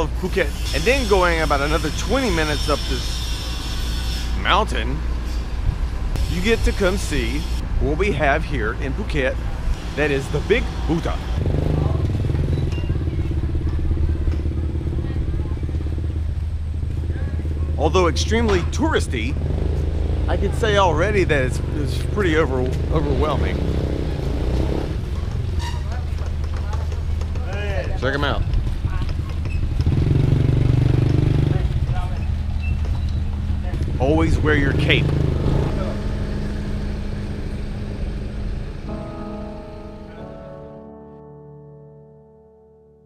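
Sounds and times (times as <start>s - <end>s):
motorcycle engine running: 11.3s - 39.1s.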